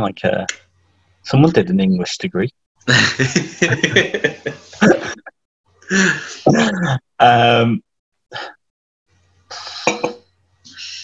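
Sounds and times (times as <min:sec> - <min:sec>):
person chuckling: 0:02.9 - 0:05.3.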